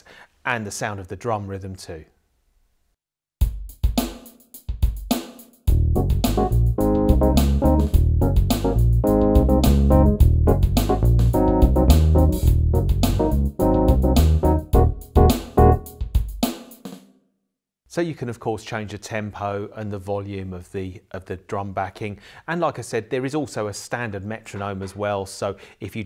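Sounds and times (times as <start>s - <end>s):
drum machine beat: 3.4s - 17.0s
electric bass: 5.7s - 15.9s
electric piano: 6.0s - 15.9s.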